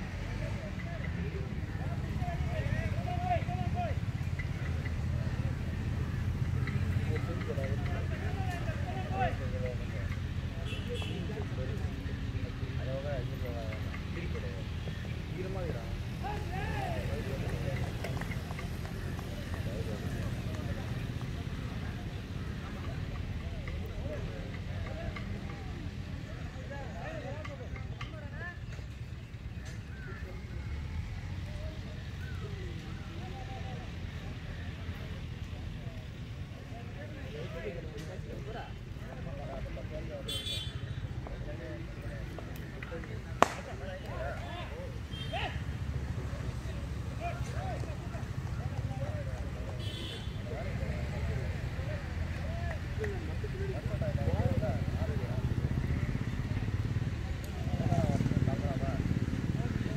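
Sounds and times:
distant players calling: 0.0 - 58.4.

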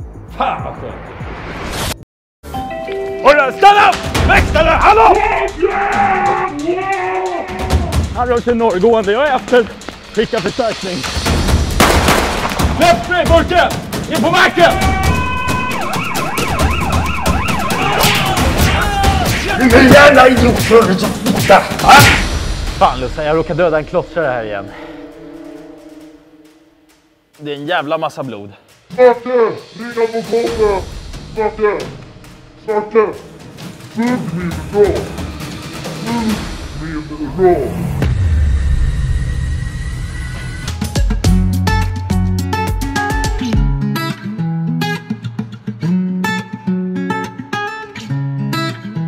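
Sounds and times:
police siren yelping: 14.7 - 19.3.

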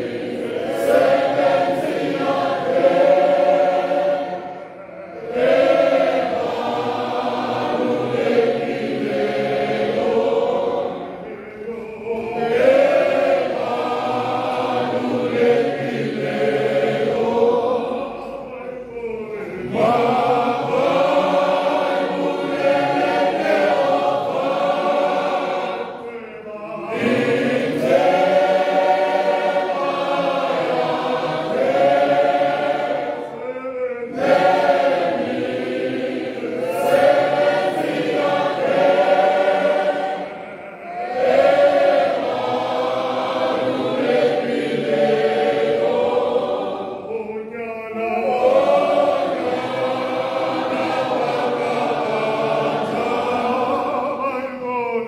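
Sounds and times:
congregation singing a hymn: 0.0 - 55.0.

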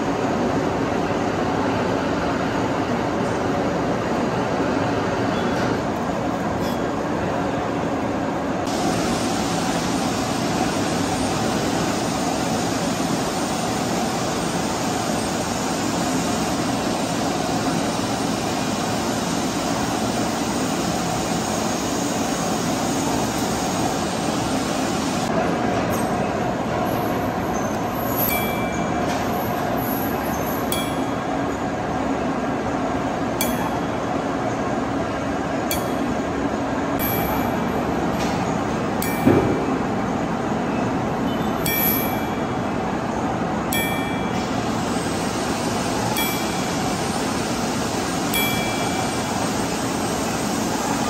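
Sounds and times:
machine-shop machinery running: 0.0 - 51.0.

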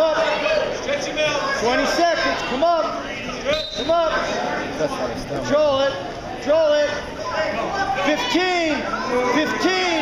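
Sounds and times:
gym background noise: 0.0 - 10.0.

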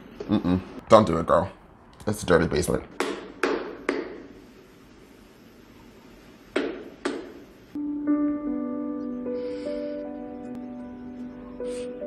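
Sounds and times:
gentle piano music: 7.8 - 12.0.

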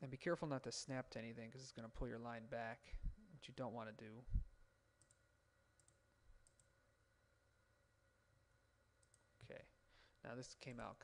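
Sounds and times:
faint steady hum: 0.0 - 11.0
computer mouse clicks: 5.0 - 5.2, 5.8 - 6.7, 9.0 - 9.3.

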